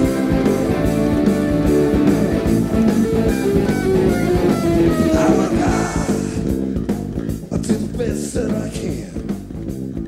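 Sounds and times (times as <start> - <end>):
electric guitar melody: 0.0 - 7.5
bass guitar: 0.0 - 10.0
drum beat: 0.1 - 9.8.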